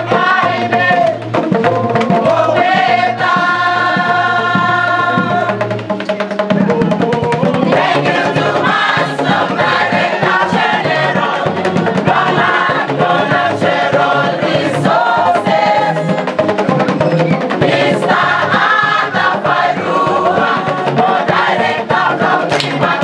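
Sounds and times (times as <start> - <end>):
group singing in chorus: 0.0 - 5.8, 6.6 - 16.7, 17.3 - 23.0
bamboo band beat: 0.0 - 23.0.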